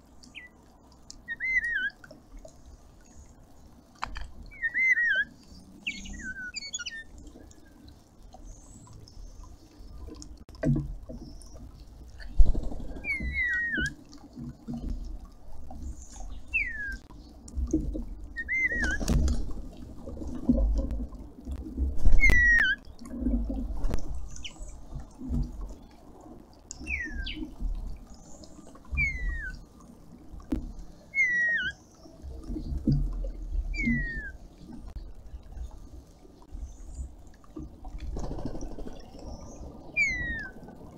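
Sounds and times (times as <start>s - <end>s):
fountain trickling: 0.0s - 21.5s, 22.2s - 40.9s
starlings whistling calls: 1.3s - 2.0s, 4.5s - 7.1s, 13.0s - 14.0s, 16.5s - 17.0s, 18.4s - 19.1s, 22.2s - 22.8s, 24.3s - 24.8s, 26.8s - 27.5s, 28.9s - 29.6s, 31.1s - 31.8s, 33.7s - 34.4s, 40.0s - 40.6s.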